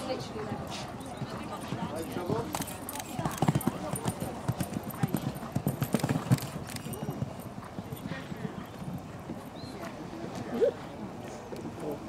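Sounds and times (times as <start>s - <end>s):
horse hoofbeats on sand: 0.7s - 10.5s.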